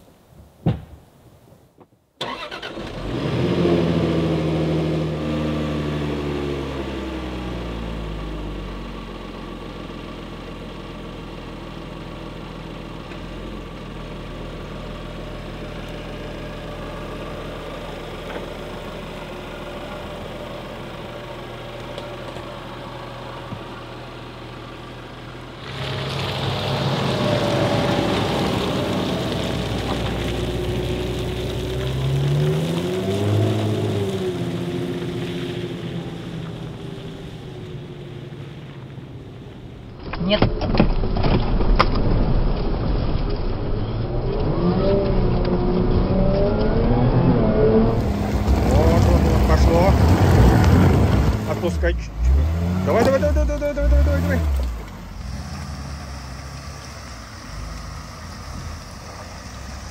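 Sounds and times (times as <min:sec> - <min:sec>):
car engine starting and idling: 0:02.2 - 0:59.9.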